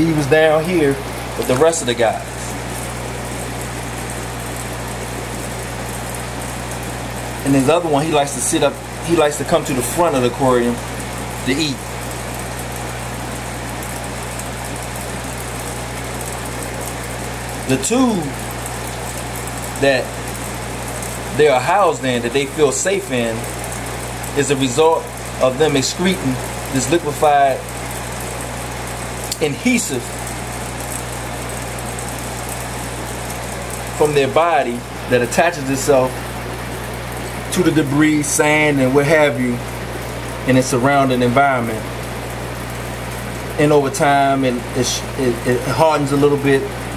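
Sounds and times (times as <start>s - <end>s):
aquarium filter hum and hiss: 0.0s - 46.9s.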